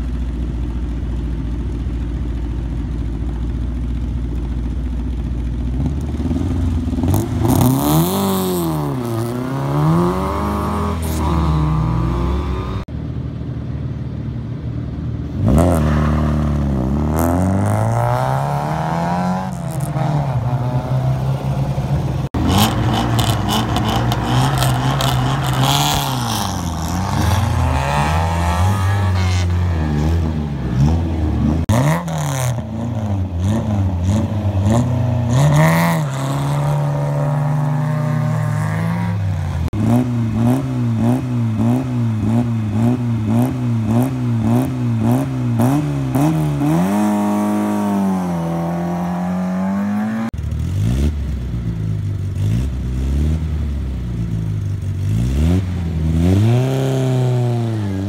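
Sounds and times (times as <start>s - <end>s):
rally car engines revving: 0.0s - 13.8s, 14.5s - 58.0s.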